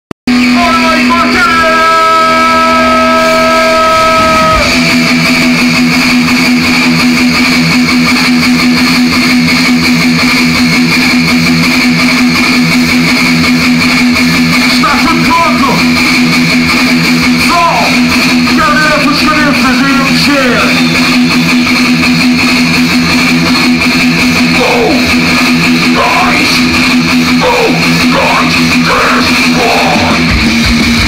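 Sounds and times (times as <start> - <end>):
thrash metal band playing: 0.3 - 31.0.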